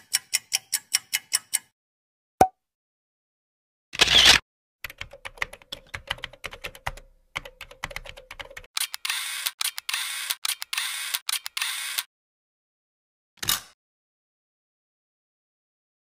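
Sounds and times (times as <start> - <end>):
rapid typing-like clicks: 4.9 - 11.7.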